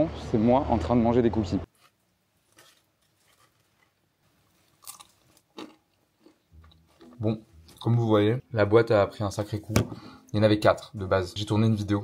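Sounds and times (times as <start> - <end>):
person chewing cookie: 2.4 - 7.8.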